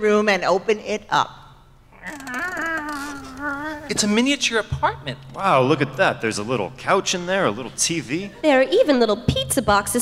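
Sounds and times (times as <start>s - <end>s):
small door creaking open: 2.0s - 4.0s.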